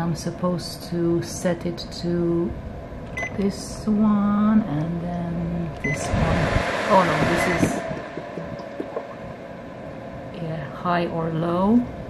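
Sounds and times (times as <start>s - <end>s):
air purifier fan humming: 0.0s - 12.0s.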